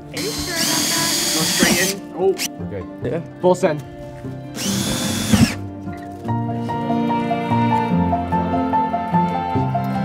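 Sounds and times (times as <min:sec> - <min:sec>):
background music: 0:00.0 - 0:10.0
cordless drill drilling into plastic: 0:00.2 - 0:02.0, 0:04.6 - 0:05.6.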